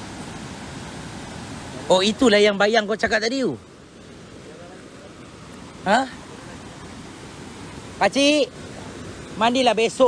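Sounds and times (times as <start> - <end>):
forest stream rushing: 0.0 - 10.0.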